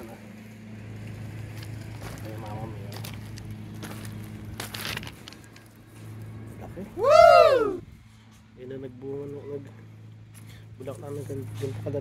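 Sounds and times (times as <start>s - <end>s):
steady low hum: 0.0s - 12.0s
rustling crunch: 0.4s - 6.8s.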